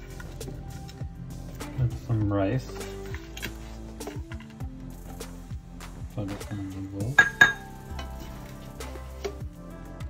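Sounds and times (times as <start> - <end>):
music with sustained notes: 0.0 - 10.0.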